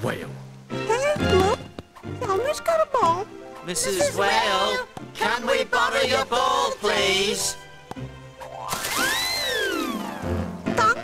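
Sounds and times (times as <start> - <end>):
person speaking: 2.2 - 4.8
cartoon whistle sound effect: 8.8 - 11.0.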